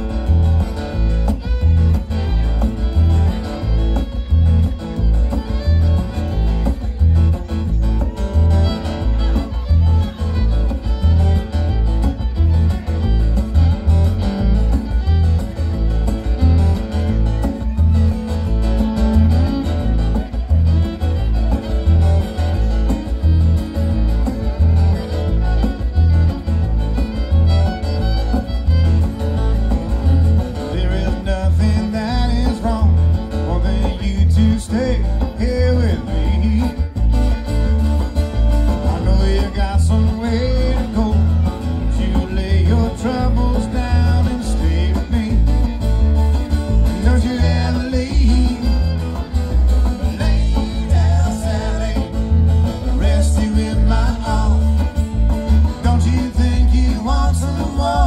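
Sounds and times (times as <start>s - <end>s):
fiddle: 0.0s - 58.0s
strummed acoustic guitars: 0.0s - 58.0s
upright bass: 0.0s - 58.0s.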